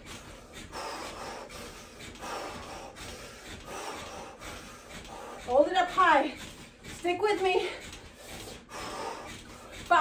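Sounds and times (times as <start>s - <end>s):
person breathing hard: 0.0s - 7.0s, 7.6s - 9.9s.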